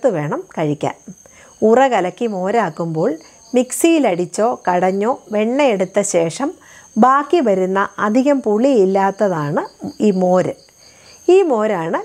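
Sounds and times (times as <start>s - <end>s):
woman talking: 0.0s - 10.6s, 11.3s - 12.0s
crickets chirping: 0.0s - 12.0s.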